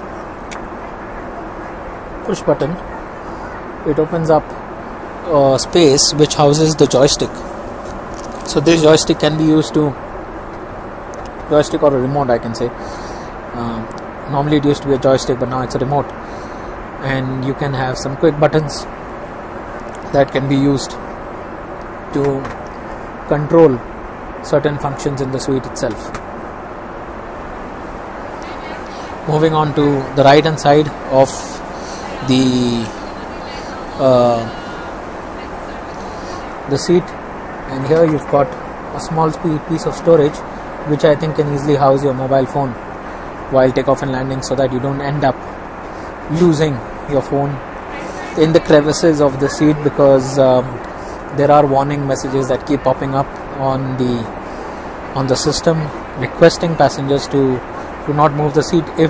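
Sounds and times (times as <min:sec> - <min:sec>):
airliner cabin noise: 0:00.0 - 0:59.0.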